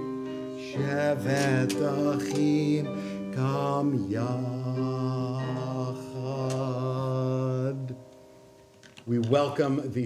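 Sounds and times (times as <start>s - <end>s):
acoustic guitar: 0.0s - 6.8s
man singing a long note: 0.6s - 8.1s.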